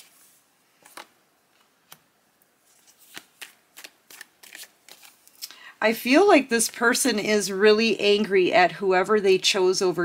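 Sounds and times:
cards being shuffled: 0.0 - 2.0, 2.6 - 5.5.

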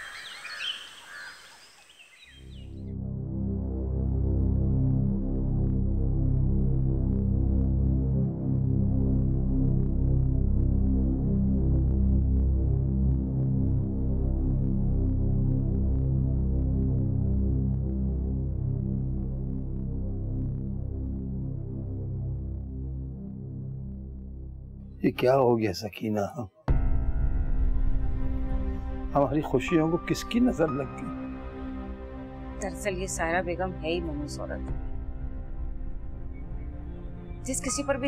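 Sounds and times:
low droning music chords: 2.5 - 25.7, 26.7 - 38.0.

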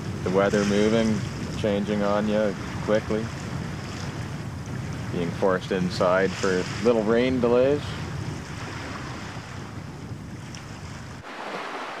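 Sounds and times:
wind rumbling on microphone: 0.0 - 12.0
small waves washing over rocks: 11.2 - 12.0.

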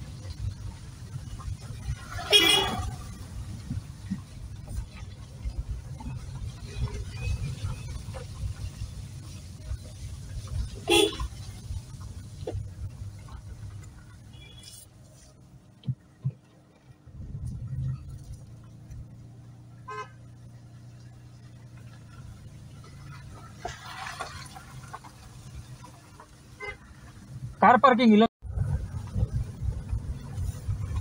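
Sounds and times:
car engine running low: 0.0 - 27.7, 28.4 - 31.0.

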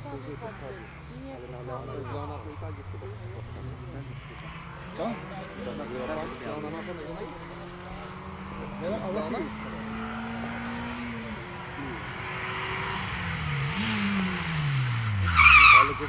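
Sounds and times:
rally car engine revving: 0.0 - 16.0
tyre squeal: 15.2 - 16.0.

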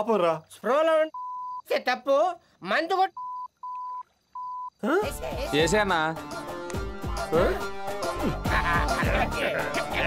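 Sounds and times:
dialogue: 0.0 - 10.0
high censor bleep: 1.1 - 1.6, 3.2 - 4.8.

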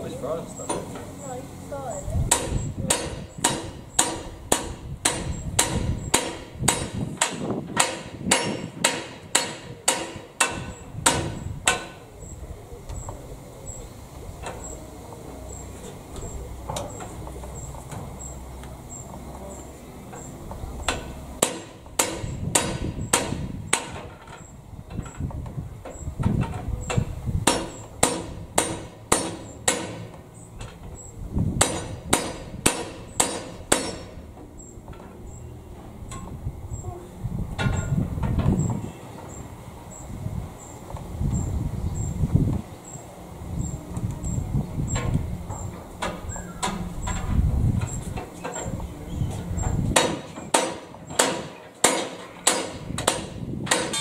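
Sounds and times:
hammer striking steel: 2.3 - 12.0, 20.9 - 24.0, 27.4 - 30.1, 31.6 - 34.2, 50.0 - 54.0.

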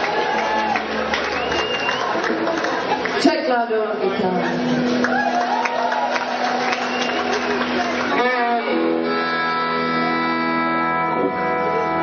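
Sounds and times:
audience cheering and shouting: 0.0 - 3.2, 4.5 - 9.1
rock band sustained chord: 6.4 - 12.0.

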